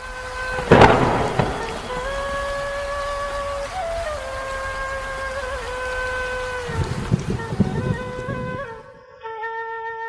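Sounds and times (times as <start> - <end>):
rain hissing: 0.0 - 9.0
thunderclap: 0.4 - 4.6, 6.6 - 8.8
thunder crack: 0.5 - 3.6.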